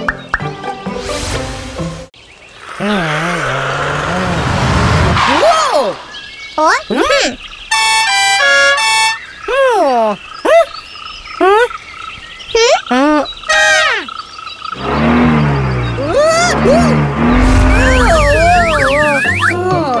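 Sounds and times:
squeaky cartoon voice sounds: 12.5 - 14.1, 16.0 - 17.0, 17.6 - 19.8
cartoon whoosh with wobbling tones: 16.0 - 19.6
stepped-pitch cartoon toots: 16.0 - 19.6.

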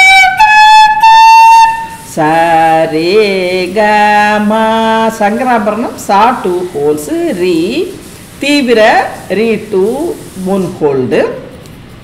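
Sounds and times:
bamboo flute playing a scale: 0.0 - 2.0.

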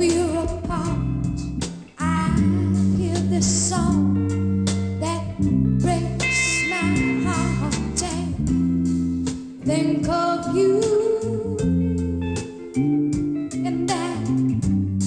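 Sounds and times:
woman singing: 0.0 - 4.4, 5.0 - 8.6, 9.6 - 12.7, 13.4 - 14.6
slow rock band playing: 0.0 - 15.0.

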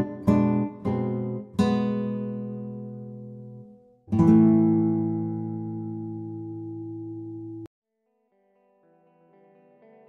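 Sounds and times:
strummed acoustic guitar chords: 0.0 - 7.6.

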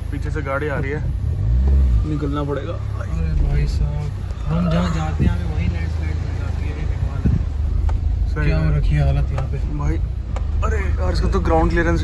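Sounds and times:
car engine and road noise: 0.0 - 12.0
soft thumps: 7.2 - 8.1, 9.2 - 10.6.

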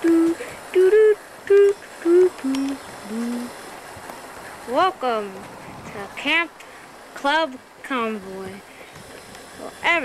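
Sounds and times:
person humming a tune: 0.0 - 3.6.

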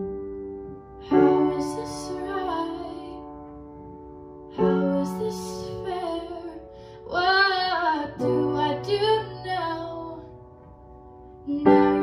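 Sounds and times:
girl singing: 1.0 - 3.4, 4.5 - 10.4, 11.5 - 12.0.

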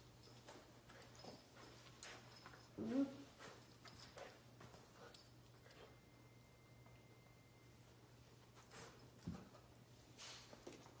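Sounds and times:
puppies scuffling on a rug: 0.2 - 6.0.

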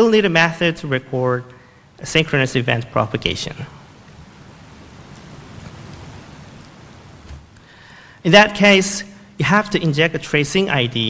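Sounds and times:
low room rumble with hiss: 0.0 - 11.0.

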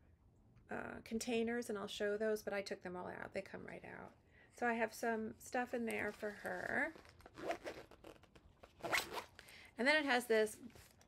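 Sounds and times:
fabric rustling: 5.9 - 9.5
zipper being pulled open: 6.0 - 9.5.

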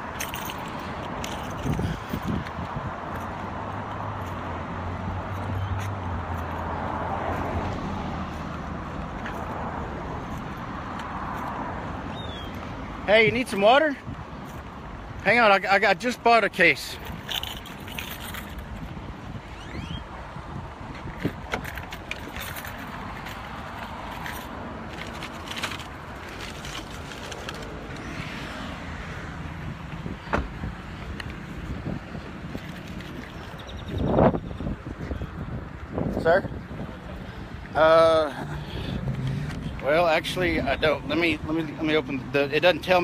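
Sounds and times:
passing street traffic: 0.0 - 43.0.

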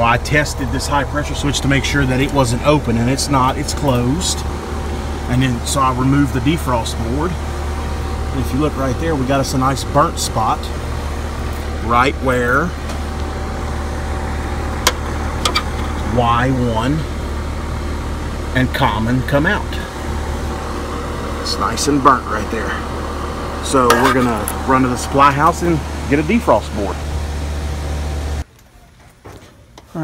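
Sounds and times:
low machine hum: 0.0 - 28.5.

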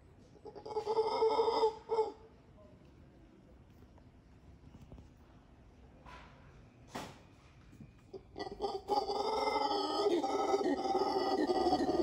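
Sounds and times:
howler monkey calling: 0.3 - 2.4, 8.1 - 12.0.

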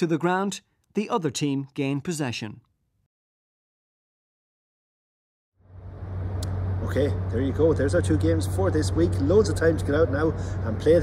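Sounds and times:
steady low hum: 5.6 - 11.0.

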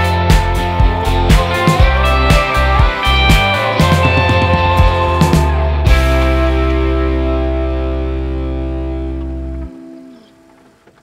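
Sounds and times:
deep bass note: 0.0 - 9.7
guitar chord ringing out: 0.0 - 10.5.

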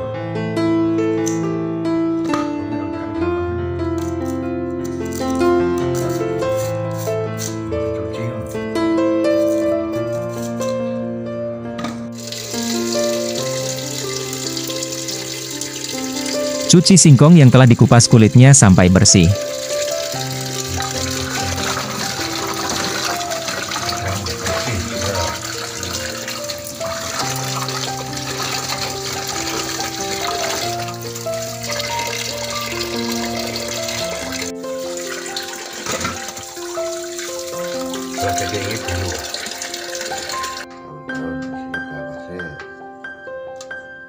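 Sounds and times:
melodic background music: 0.0 - 44.0
tap water running into a pot: 12.1 - 16.8, 19.0 - 40.6
hands splashing in water: 19.8 - 40.6.

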